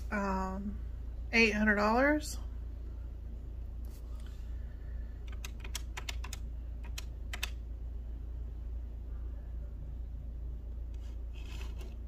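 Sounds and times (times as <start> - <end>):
calculator key presses: 5.2 - 7.6.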